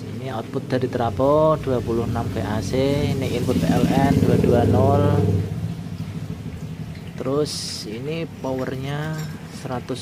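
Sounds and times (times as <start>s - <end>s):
low droning hum: 0.0s - 10.0s.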